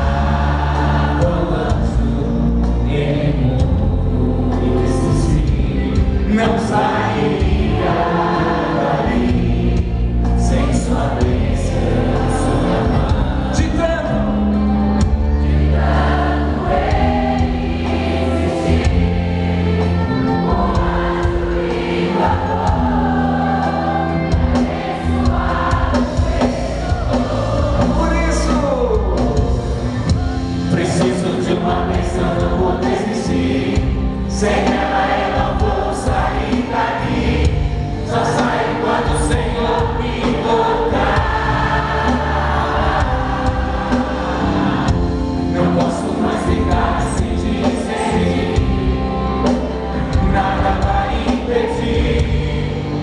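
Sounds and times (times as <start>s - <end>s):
accompanying music: 0.0s - 53.0s
band with heavy bass: 0.0s - 53.0s
group of voices singing: 0.0s - 53.0s.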